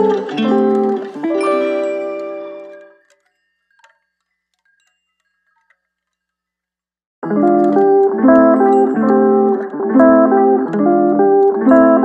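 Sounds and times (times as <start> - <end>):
chime-like tinkling music: 0.0 - 5.6.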